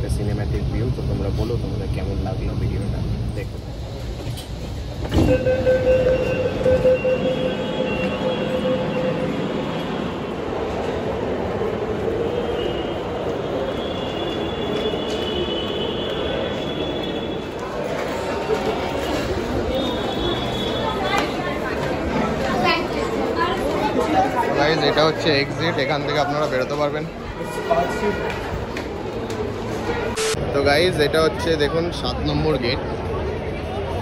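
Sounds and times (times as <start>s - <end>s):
train rumbling inside carriage: 0.0s - 23.9s
indistinct passenger voices: 0.0s - 34.0s.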